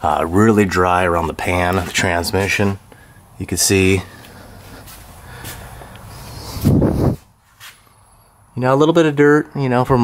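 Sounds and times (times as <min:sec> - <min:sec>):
low steady background noise: 0:00.0 - 0:10.0
loud puff of breath: 0:05.2 - 0:07.2.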